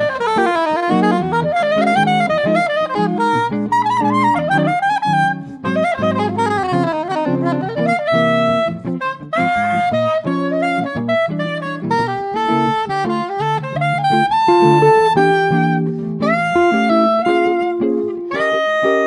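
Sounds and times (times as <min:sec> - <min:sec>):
electric guitar chords: 0:00.0 - 0:19.0
soprano saxophone jazz melody: 0:00.0 - 0:19.0.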